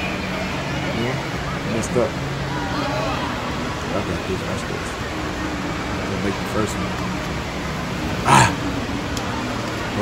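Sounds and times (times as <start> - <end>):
steady background noise: 0.0 - 10.0
person shouting: 8.3 - 8.6.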